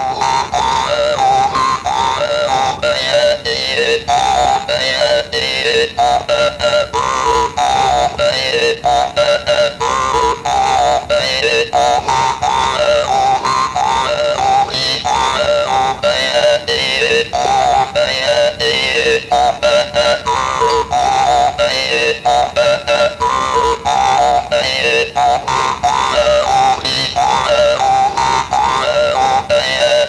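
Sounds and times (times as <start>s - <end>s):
jaw harp buzzing: 0.0s - 30.0s.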